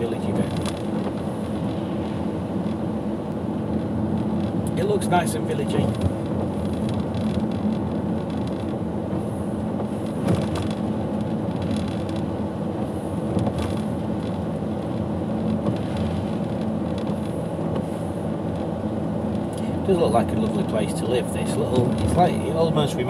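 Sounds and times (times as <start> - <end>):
car engine hum: 0.0 - 23.0
tyre noise on wet road: 0.0 - 23.0.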